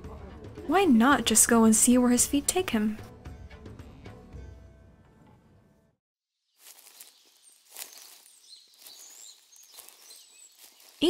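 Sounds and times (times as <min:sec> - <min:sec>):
small birds chirping: 0:06.4 - 0:11.0
footsteps on leaves: 0:06.5 - 0:11.0.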